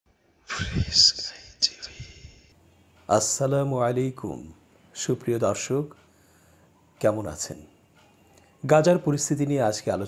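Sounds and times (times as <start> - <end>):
person whispering: 0.5 - 2.5.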